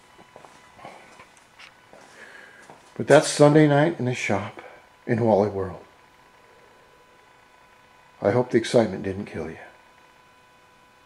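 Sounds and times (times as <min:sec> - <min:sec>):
faint footsteps: 0:00.0 - 0:03.0.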